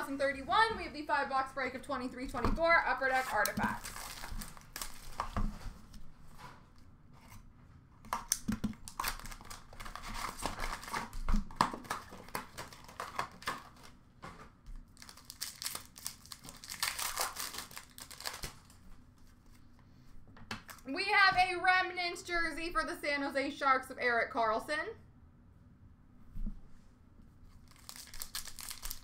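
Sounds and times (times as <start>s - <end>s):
wrappers crinkling and tearing: 3.0s - 5.4s, 8.7s - 13.9s, 14.9s - 18.8s, 27.5s - 29.0s
cards rustling: 3.0s - 5.9s, 8.1s - 14.0s, 15.0s - 19.6s, 27.6s - 29.0s.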